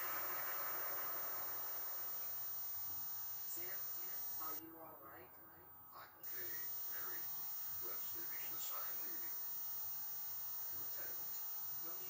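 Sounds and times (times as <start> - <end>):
tape playback hiss: 0.0 - 12.0.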